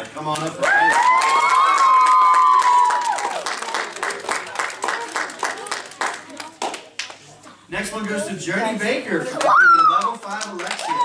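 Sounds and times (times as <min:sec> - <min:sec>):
children clapping: 0:00.3 - 0:07.2, 0:09.4 - 0:11.0
high-pitched cheer: 0:00.6 - 0:03.6, 0:09.4 - 0:10.2.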